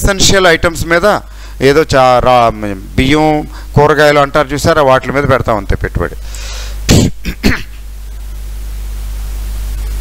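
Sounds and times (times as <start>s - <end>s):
steady low hum: 0.0s - 10.0s
soft breath: 6.2s - 6.8s
man clearing throat: 6.9s - 7.9s.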